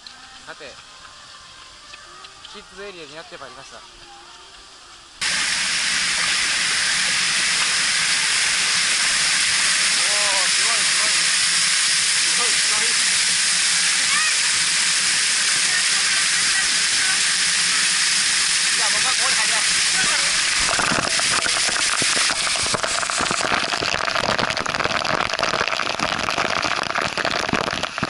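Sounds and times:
faint children's voices: 0:00.0 - 0:05.2, 0:14.0 - 0:14.8
water spray hissing: 0:04.6 - 0:28.0.

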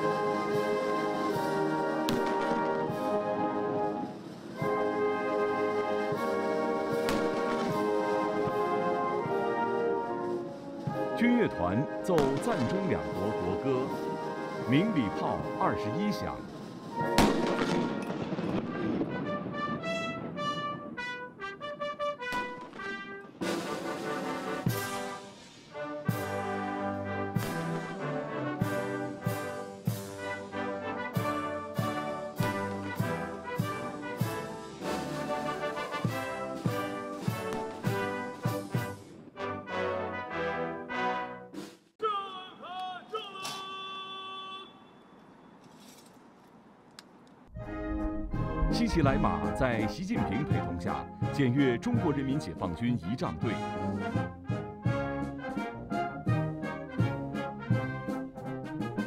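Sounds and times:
military brass band playing: 0:00.0 - 0:41.8, 0:47.6 - 0:59.0
salute guns firing: 0:07.1 - 0:07.8, 0:17.2 - 0:18.2.

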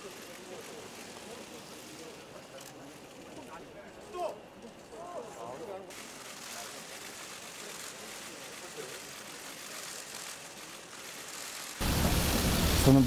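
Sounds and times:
steady hiss: 0:05.9 - 0:13.0.

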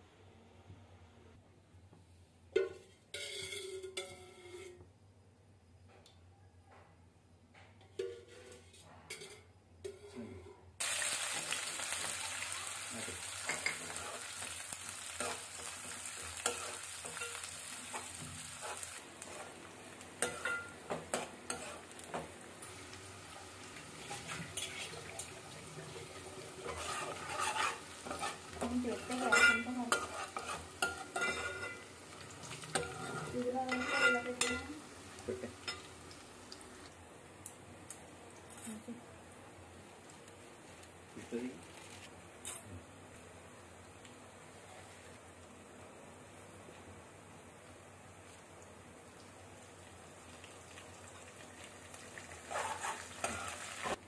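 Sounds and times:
spoon scraping metal pan: 0:02.6 - 0:04.8, 0:07.9 - 0:10.5, 0:16.3 - 0:19.6, 0:20.2 - 0:22.0, 0:24.1 - 0:25.2, 0:26.6 - 0:34.8, 0:52.5 - 0:54.0
onions sizzling in hot oil: 0:10.8 - 0:37.0, 0:43.2 - 0:54.0.

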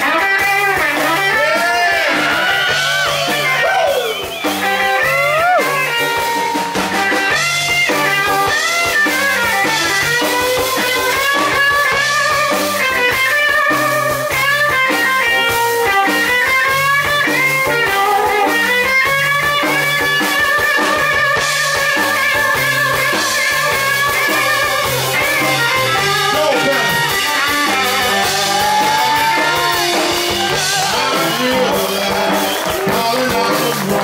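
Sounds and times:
electric blues band playing: 0:00.0 - 0:34.0
electric guitar bent notes: 0:00.0 - 0:34.0.

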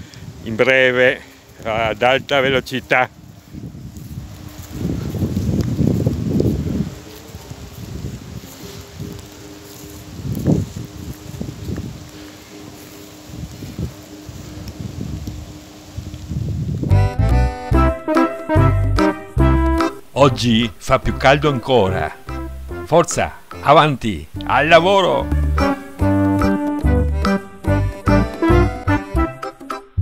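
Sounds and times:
wind buffeting microphone: 0:00.0 - 0:17.4.

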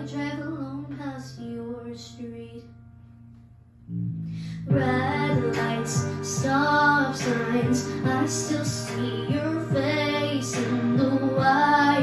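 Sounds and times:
girl singing: 0:00.0 - 0:02.8, 0:04.4 - 0:12.0
pop ballad backing track: 0:00.0 - 0:12.0.

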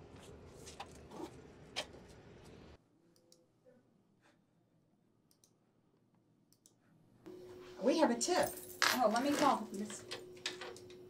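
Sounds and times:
steady room hum: 0:00.0 - 0:11.0
computer mouse clicks: 0:05.3 - 0:05.6, 0:06.5 - 0:06.8.

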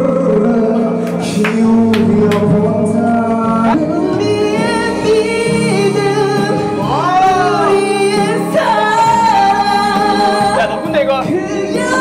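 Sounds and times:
backing track: 0:00.0 - 0:12.0
person singing into a microphone: 0:00.0 - 0:12.0.

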